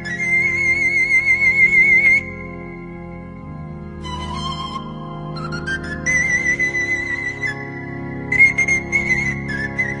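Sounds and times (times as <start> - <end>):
sustained low accompaniment: 0.0 - 10.0
pan flute melody: 4.0 - 7.6.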